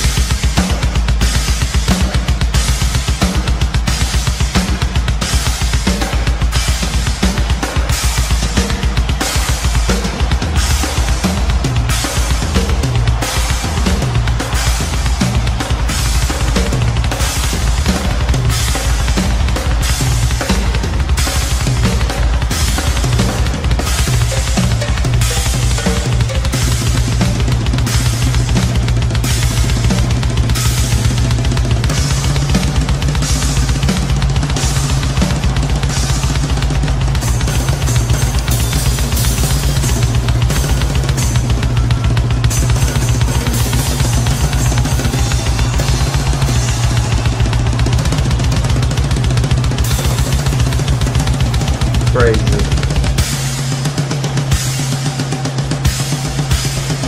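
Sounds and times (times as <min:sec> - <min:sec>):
rock drum kit solo: 0:00.0 - 0:57.0.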